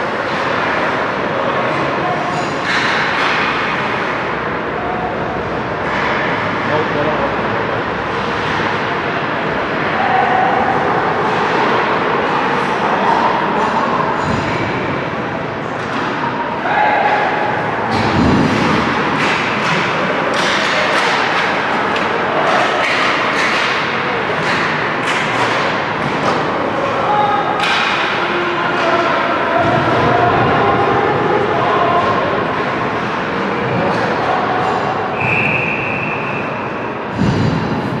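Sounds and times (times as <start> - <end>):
hockey sticks and puck clacking: 0.0 - 4.9, 5.8 - 7.0, 8.1 - 10.6, 11.2 - 14.9, 15.6 - 38.0
murmur of voices and shouts: 0.0 - 38.0
referee's whistle: 35.2 - 36.6.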